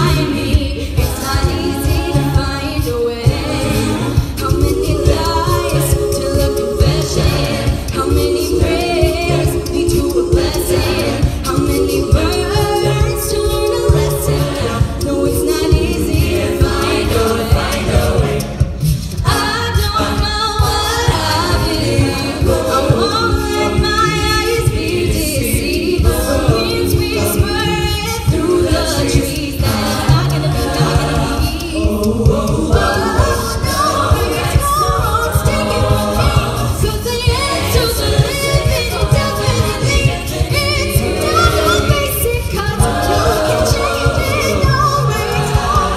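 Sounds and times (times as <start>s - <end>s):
a cappella group singing in harmony: 0.0s - 45.9s
vocal percussion beat: 0.0s - 45.9s.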